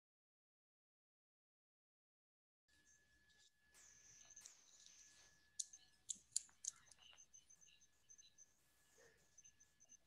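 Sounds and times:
faint steady high tone: 0:02.7 - 0:10.0
faint sharp clicks: 0:04.3 - 0:07.3.

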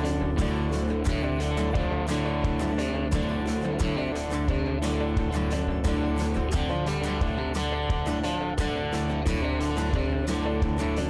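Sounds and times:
guitar-led background music: 0:00.0 - 0:11.0
steady beat: 0:00.0 - 0:11.0.

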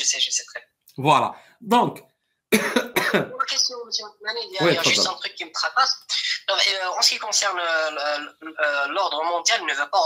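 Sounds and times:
man speaking: 0:00.9 - 0:02.0, 0:02.6 - 0:03.3, 0:04.6 - 0:05.1.

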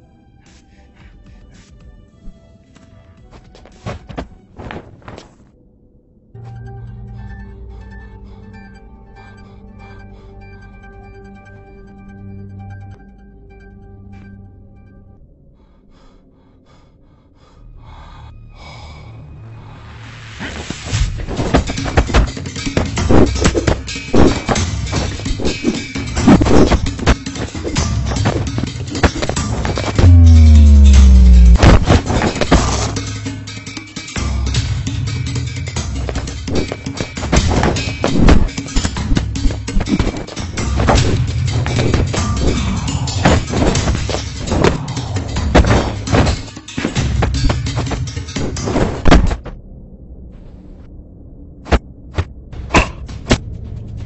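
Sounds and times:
music: 0:00.0 - 0:05.6, 0:06.3 - 0:49.5
rhythmic panting breaths: 0:00.2 - 0:04.1, 0:07.4 - 0:11.2, 0:15.4 - 0:31.2, 0:35.7 - 0:48.3
low rumble: 0:29.5 - 0:33.0, 0:49.4 - 0:54.0
fight sound effects: 0:30.0 - 0:31.9.

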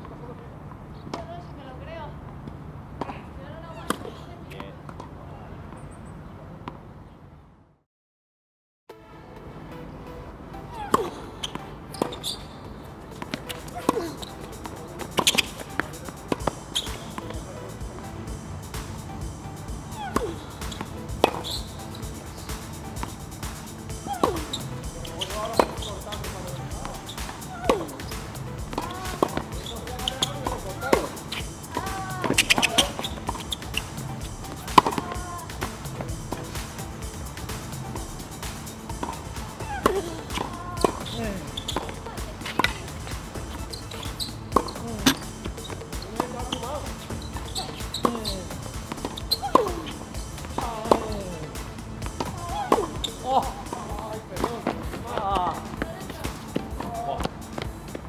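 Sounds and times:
tennis ball hits and bounces: 0:01.1 - 0:01.4, 0:02.4 - 0:05.2, 0:10.7 - 0:58.0.

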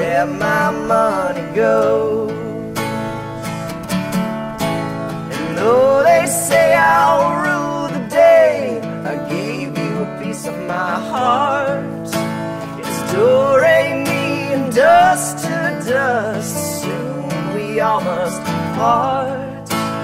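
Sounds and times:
acoustic guitar strumming: 0:00.0 - 0:20.0.

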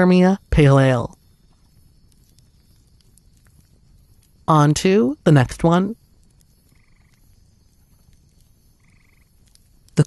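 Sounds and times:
quiet background noise: 0:00.0 - 0:10.0
trilled animal calls: 0:06.6 - 0:07.4, 0:08.7 - 0:09.5.

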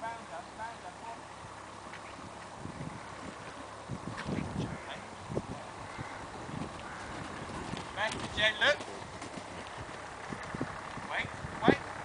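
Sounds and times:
horse hoofbeats on sand: 0:06.5 - 0:10.6.

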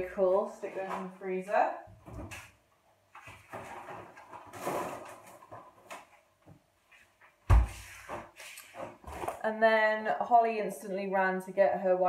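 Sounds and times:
frozen food packs rustling: 0:03.2 - 0:06.2
freezer door thump: 0:07.5 - 0:07.8.

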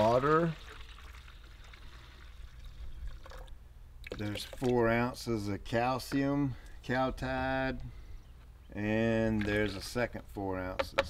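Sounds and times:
water pouring into plastic pitcher: 0:00.0 - 0:04.8.

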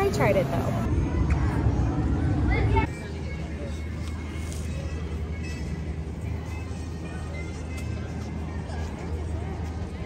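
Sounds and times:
woman speaking: 0:00.0 - 0:00.8
faint distant voices: 0:00.0 - 0:10.0.

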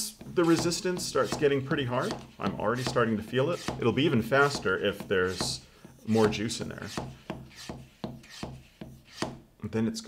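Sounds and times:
hand vacuum pump strokes: 0:00.1 - 0:09.4.

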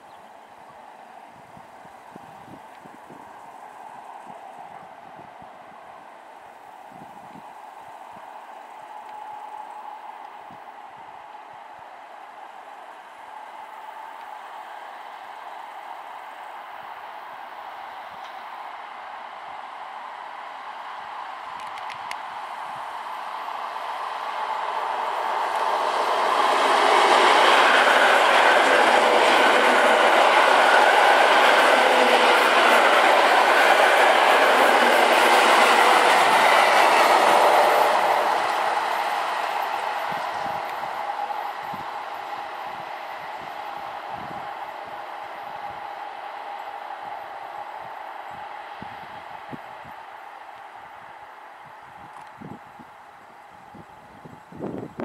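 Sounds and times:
electric train passing on rails: 0:00.0 - 0:55.0.

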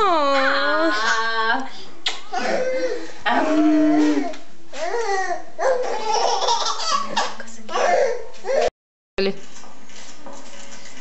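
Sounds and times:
baby laughing: 0:05.6 - 0:08.1.

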